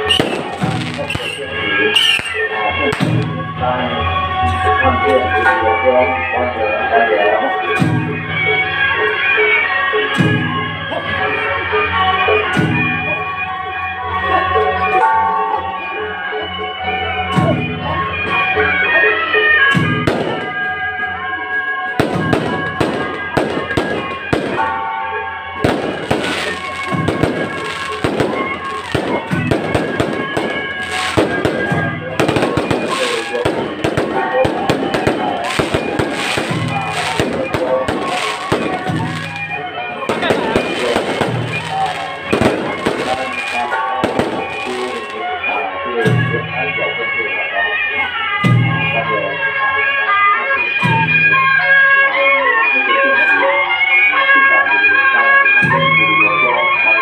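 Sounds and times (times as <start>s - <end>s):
firecrackers crackling: 0.0s - 3.5s, 19.8s - 21.1s, 21.9s - 45.6s
music: 0.0s - 57.0s.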